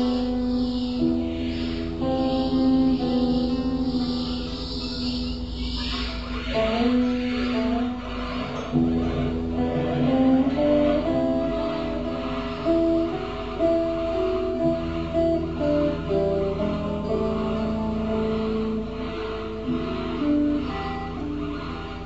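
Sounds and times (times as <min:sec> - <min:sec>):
steady low drone: 0:00.0 - 0:22.0
electric guitar held notes: 0:05.4 - 0:22.0.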